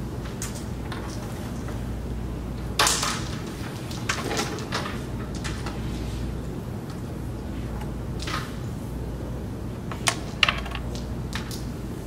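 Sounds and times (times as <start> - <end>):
carrom pieces clacking: 9.9 - 11.7.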